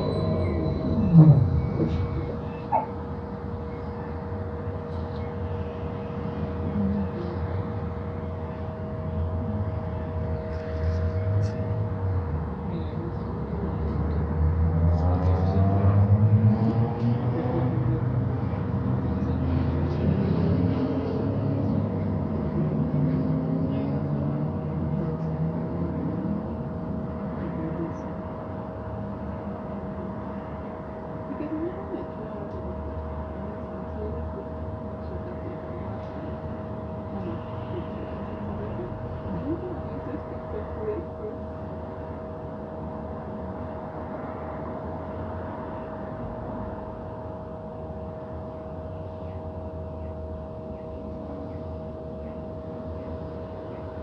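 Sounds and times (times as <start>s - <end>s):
rising whine: 0.0s - 7.8s
bus engine low rumble: 0.0s - 54.0s
faint passenger voices: 0.0s - 54.0s.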